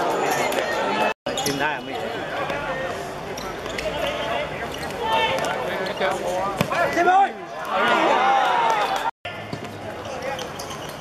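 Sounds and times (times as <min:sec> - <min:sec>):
ball kicked and bouncing: 0:05.2 - 0:06.8.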